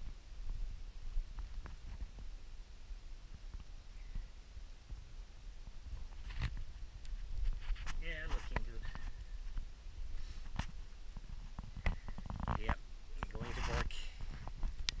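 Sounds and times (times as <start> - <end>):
voice: 8.0 - 9.0, 12.6 - 14.2.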